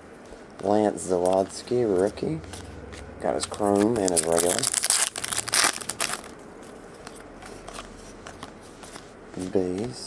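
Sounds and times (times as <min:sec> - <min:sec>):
cards rustling: 0:00.6 - 0:10.0
foil wrapper tearing and crinkling: 0:03.6 - 0:06.4.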